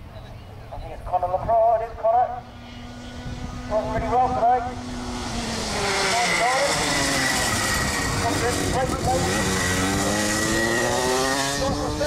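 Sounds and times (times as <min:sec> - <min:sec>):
kart engine approaching: 0:01.5 - 0:12.0
people talking: 0:08.2 - 0:09.5.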